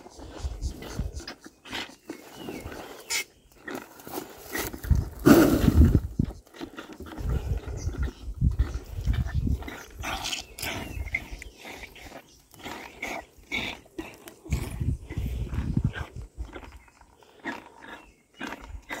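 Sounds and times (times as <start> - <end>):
animal slurping milk: 0.0 - 19.0.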